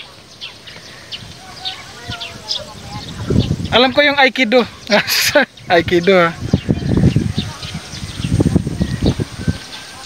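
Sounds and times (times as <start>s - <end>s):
low rumbling on microphone: 1.0s - 4.0s, 5.6s - 9.8s.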